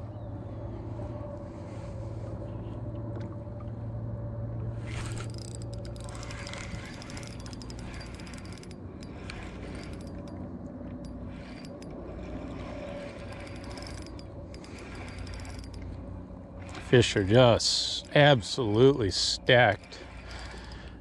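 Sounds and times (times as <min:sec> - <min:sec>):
low steady hum: 0:00.0 - 0:21.0
fishing reel gears ticking: 0:04.9 - 0:21.0.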